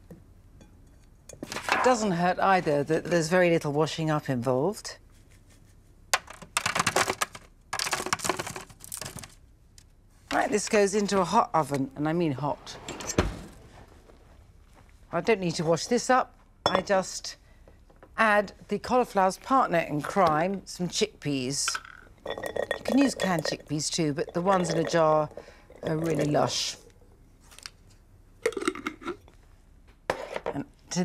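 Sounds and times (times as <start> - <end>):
oven door shutting: 12.8 - 13.6.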